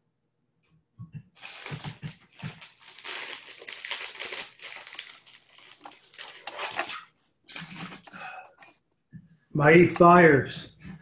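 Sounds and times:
packaging rustling and crinkling: 0:01.4 - 0:08.3.

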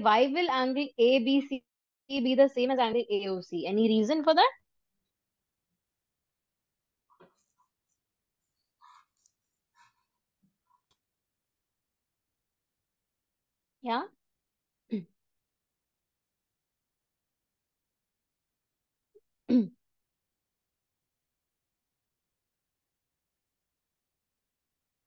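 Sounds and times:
person clearing throat: 0:19.5 - 0:19.8.

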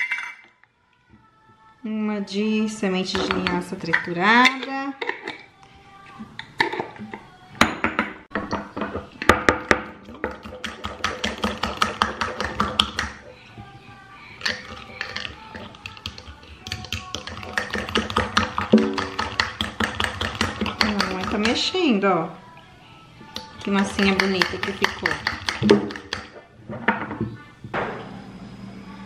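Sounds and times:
metal utensil beating batter in glass: 0:14.5 - 0:21.8, 0:23.8 - 0:26.4.

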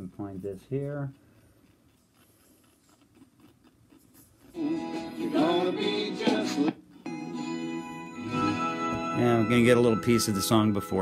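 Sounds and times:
man speaking: 0:00.0 - 0:01.2, 0:09.1 - 0:11.0.

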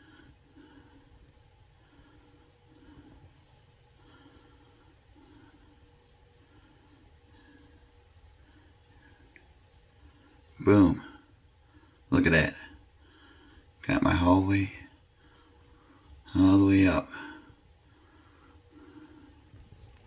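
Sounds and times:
faint low pulsing hum: 0:00.0 - 0:20.0.

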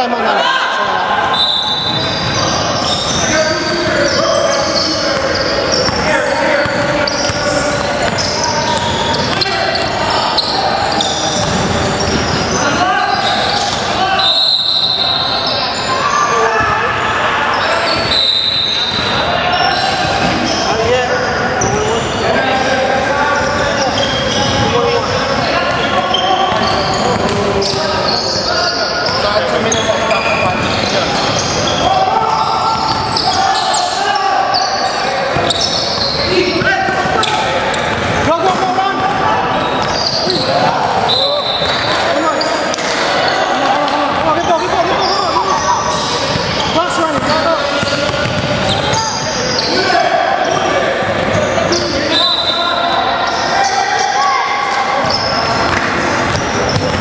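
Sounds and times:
indistinct voices echoing: 0:00.0 - 0:57.0
basketball bouncing on hardwood: 0:47.2 - 0:48.6.

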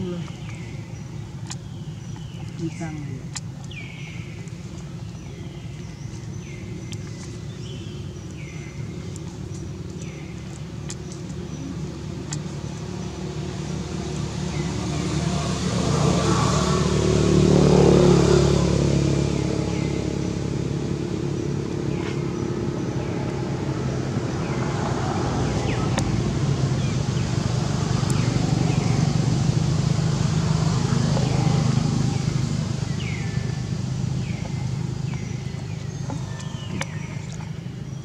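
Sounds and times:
vehicle engine passing by: 0:08.4 - 0:38.0.

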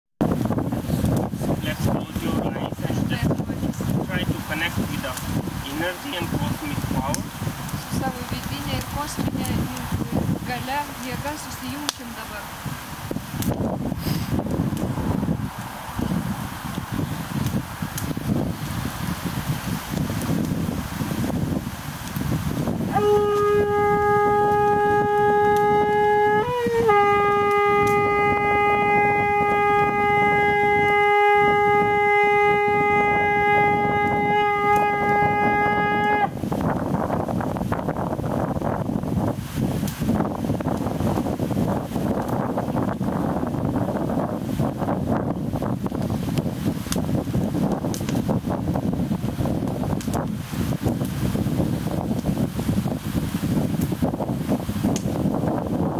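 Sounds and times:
wind rumble on microphone: 0:00.2 - 0:55.9
conch shell trumpet note: 0:22.9 - 0:36.4.

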